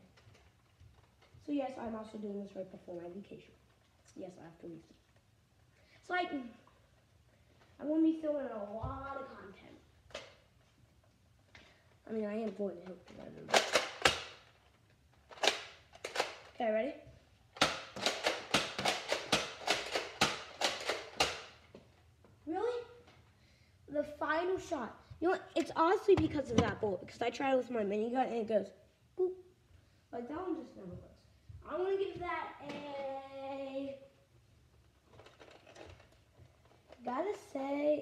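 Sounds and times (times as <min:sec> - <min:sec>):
boy's drawn-out voice: 0:30.1 - 0:34.1.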